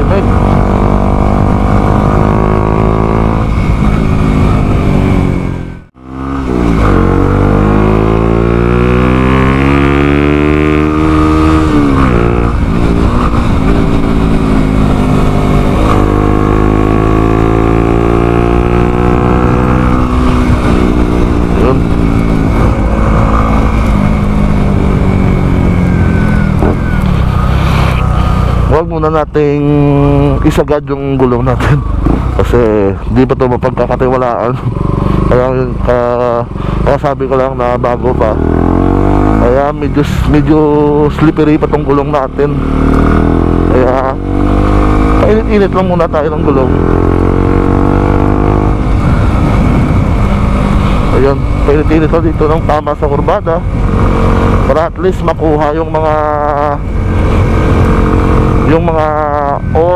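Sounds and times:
wind noise: 0:00.0 - 0:28.7, 0:46.7 - 0:54.7
motorcycle engine revving: 0:00.0 - 0:59.9.

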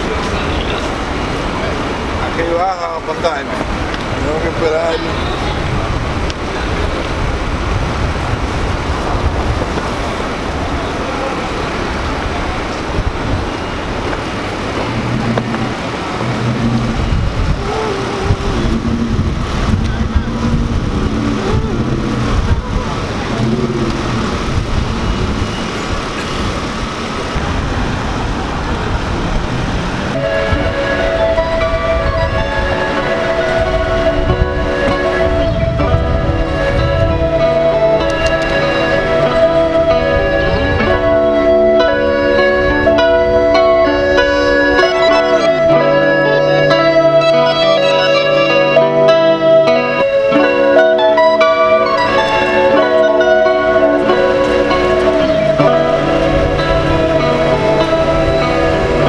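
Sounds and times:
street traffic: 0:00.0 - 0:59.0
subway trains rumbling: 0:00.0 - 0:59.0
sustained musical tones: 0:00.0 - 0:59.0
horn-like pitched tones: 0:04.2 - 0:08.0, 0:12.6 - 0:28.0, 0:28.9 - 0:59.0.

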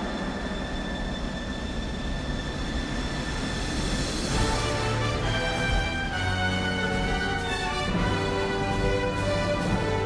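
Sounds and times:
aircraft engines droning: 0:00.0 - 0:10.0.

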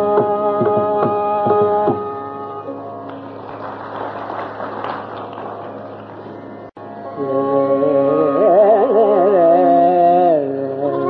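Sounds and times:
audience applauding: 0:03.1 - 0:06.4.

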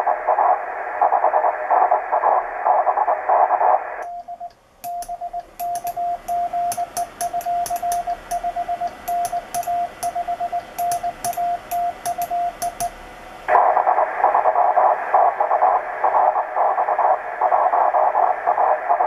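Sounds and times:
morse code sidetone: 0:04.0 - 0:12.9
hissing morse signal: 0:04.0 - 0:19.0.

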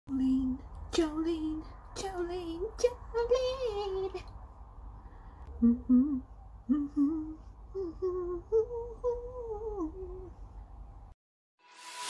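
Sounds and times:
low room hum: 0:00.1 - 0:11.2
woman humming: 0:05.5 - 0:10.4.

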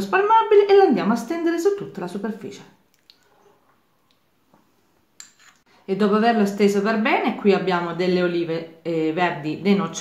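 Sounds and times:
utensil scraping glass bowl: 0:05.2 - 0:05.7.

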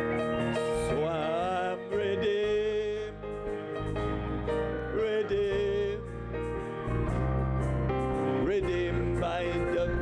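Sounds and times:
person singing a hymn: 0:00.0 - 0:03.4, 0:04.8 - 0:06.2, 0:08.4 - 0:10.0
electronic organ chords: 0:00.0 - 0:10.0.

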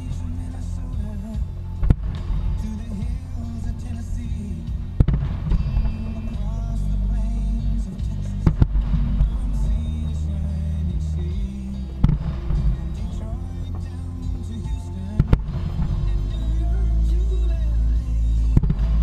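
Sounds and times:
music playing: 0:00.0 - 0:19.0.

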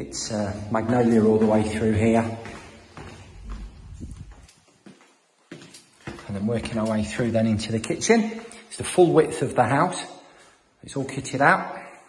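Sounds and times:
footsteps on hard floor: 0:00.0 - 0:09.1.

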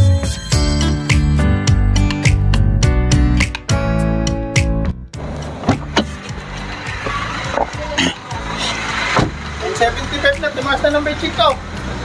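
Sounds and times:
van engine idling: 0:05.2 - 0:12.0.

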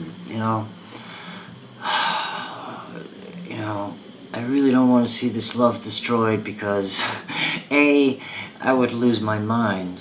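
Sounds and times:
man breathing loudly: 0:00.8 - 0:02.9, 0:07.3 - 0:08.6.

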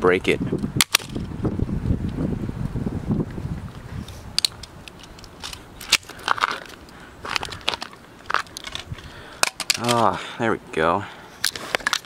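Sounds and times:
handling noise rumbling: 0:00.0 - 0:10.0.

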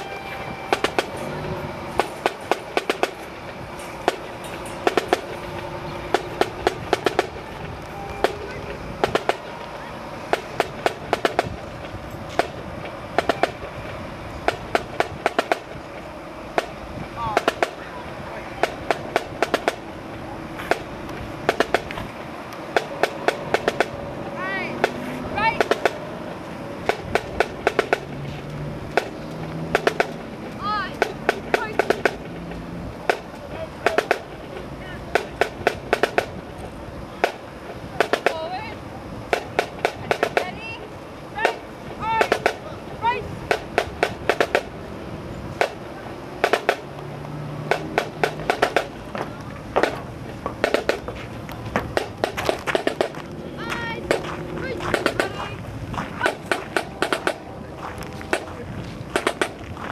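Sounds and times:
marching drum beating: 0:00.0 - 0:01.2, 0:02.0 - 0:03.2, 0:04.0 - 0:11.6, 0:12.3 - 0:13.7, 0:14.4 - 0:15.8, 0:16.5 - 0:17.8, 0:18.4 - 0:19.9, 0:20.6 - 0:22.0, 0:22.7 - 0:26.1, 0:26.8 - 0:28.2, 0:28.8 - 0:32.4, 0:33.0 - 0:36.4, 0:38.0 - 0:38.6, 0:39.3 - 0:40.8, 0:41.4 - 0:44.8, 0:45.6 - 0:46.9, 0:47.6 - 0:59.9
voices: 0:00.0 - 0:59.9.

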